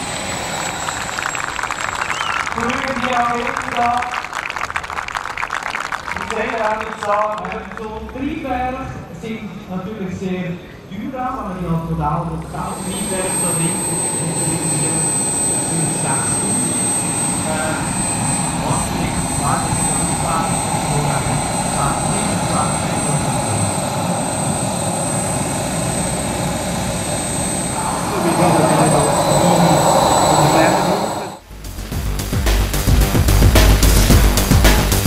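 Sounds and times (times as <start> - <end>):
model jet turbine whine: 0.0 - 3.9, 6.2 - 31.5.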